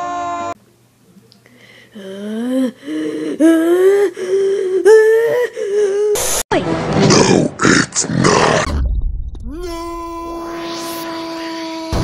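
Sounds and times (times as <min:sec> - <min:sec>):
high-pitched vocal squeals: 0:09.4 - 0:12.0.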